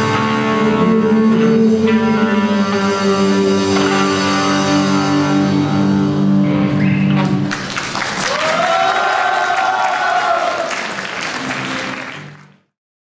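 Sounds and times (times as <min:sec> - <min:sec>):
guitars holding a chord: 0:00.0 - 0:07.5
audience clapping: 0:07.2 - 0:12.7
person cheering: 0:08.2 - 0:10.8.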